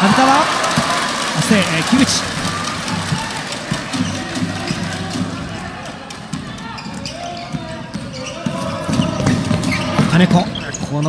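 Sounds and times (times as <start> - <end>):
murmur of crowd voices: 0.0 - 11.0.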